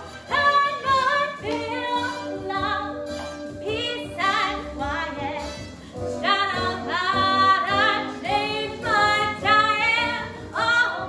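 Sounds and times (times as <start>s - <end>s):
woman singing with vibrato: 6.2s - 11.0s.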